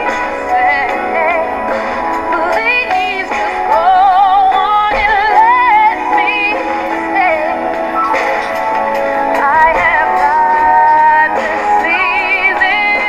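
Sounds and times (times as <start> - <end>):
women singing soul ballad: 0.0 - 7.8, 8.4 - 13.0
backing chords: 0.0 - 13.0.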